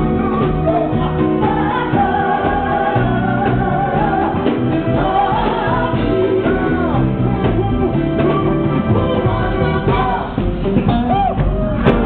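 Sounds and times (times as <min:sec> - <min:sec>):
man and woman singing duet: 0:00.0 - 0:11.3
band accompaniment: 0:00.0 - 0:12.0.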